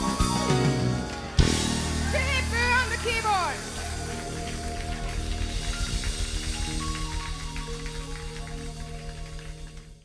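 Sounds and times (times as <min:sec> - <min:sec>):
sustained low chord and bass: 0:00.0 - 0:10.0.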